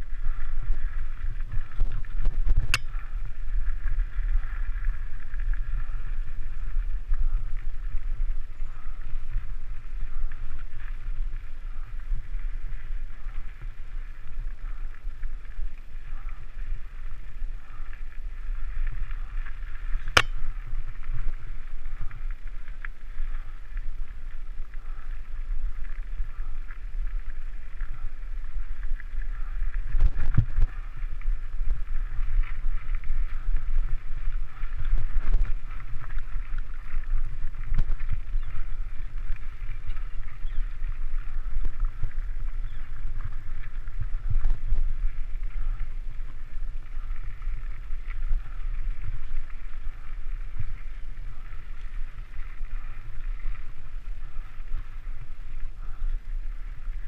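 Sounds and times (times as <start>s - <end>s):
bike tyres rumbling over rocky trail: 0.0s - 57.0s.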